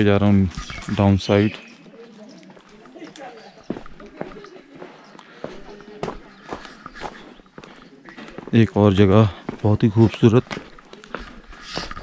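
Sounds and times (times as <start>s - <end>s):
footsteps on paved path: 0.0s - 12.0s.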